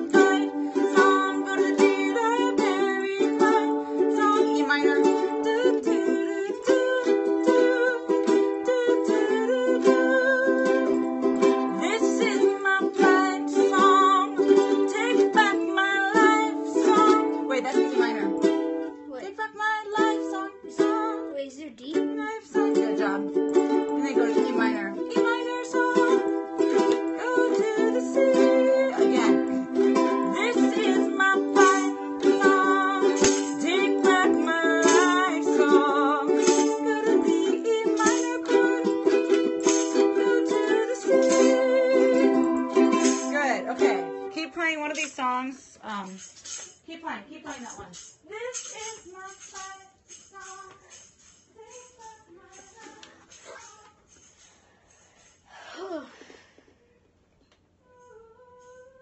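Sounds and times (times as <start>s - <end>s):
ukuleles strumming chords: 0.0s - 54.5s.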